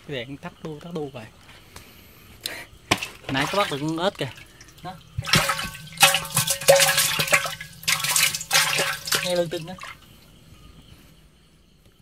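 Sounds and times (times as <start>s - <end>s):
water splashing in a basin: 2.9s - 10.2s.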